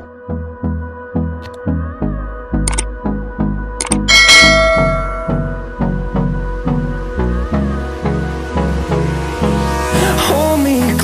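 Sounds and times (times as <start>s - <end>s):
pop music with steady beat: 0.3s - 11.0s
notification bell chime: 4.1s - 5.6s.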